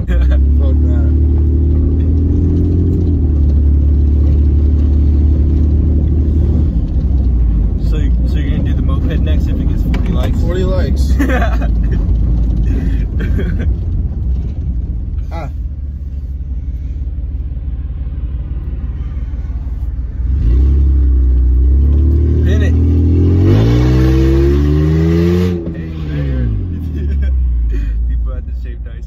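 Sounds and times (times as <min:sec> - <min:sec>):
minivan engine accelerating: 0:00.0 - 0:29.0.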